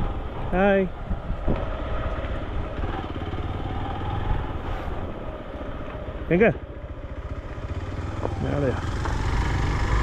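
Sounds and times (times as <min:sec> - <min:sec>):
motorcycle engine running: 0:05.5 - 0:10.0.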